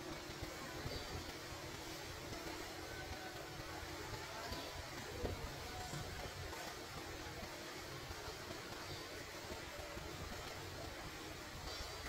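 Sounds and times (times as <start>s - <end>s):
outdoor ambient noise: 0.0s - 12.0s.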